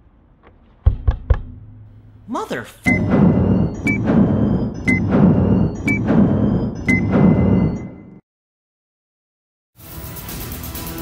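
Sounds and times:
electronic beep with ringing thud: 0:02.9 - 0:08.2.

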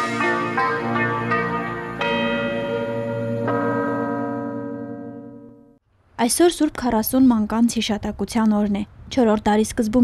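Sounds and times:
bell-like chimes theme music: 0:00.0 - 0:05.8.

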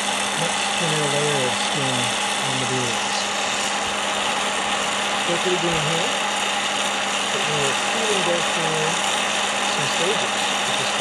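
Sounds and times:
constant low hum: 0:00.0 - 0:11.0
popcorn popper fan rushing: 0:00.0 - 0:11.0.

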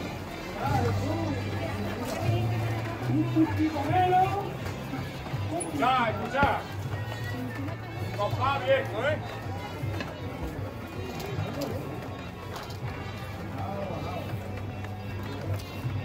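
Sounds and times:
music: 0:00.0 - 0:16.0
shuffling footsteps on cobbles: 0:00.0 - 0:16.0
man's voice: 0:03.1 - 0:04.6.

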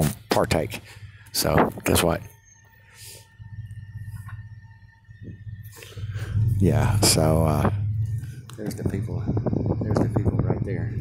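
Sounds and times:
faint steady tone: 0:00.0 - 0:11.0
vehicle engine rumble inside cabin: 0:00.0 - 0:11.0.

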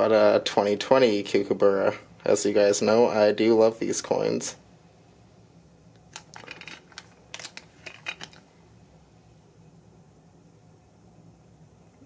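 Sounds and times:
plastic bag crinkling: 0:06.1 - 0:08.4.

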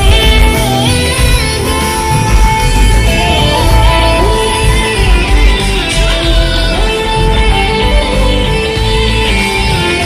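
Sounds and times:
plucked guitar: 0:00.0 - 0:10.0
steady bass: 0:00.0 - 0:10.0.

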